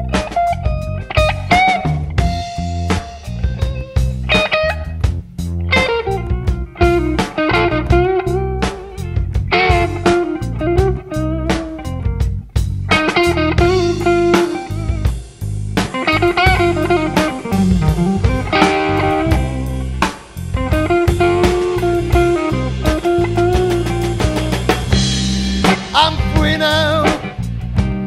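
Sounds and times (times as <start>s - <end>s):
bass and drums: 0.0s - 28.0s
electric guitar lead: 0.0s - 28.0s.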